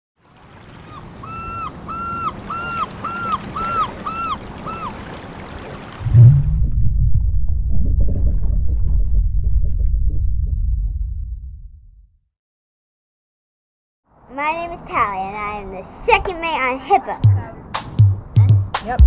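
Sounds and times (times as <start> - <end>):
soft wave-like wash: 0.2 - 6.8
short arched calls: 0.8 - 5.0
low rumbling drone: 6.0 - 12.0
deep boom: 6.0 - 12.1.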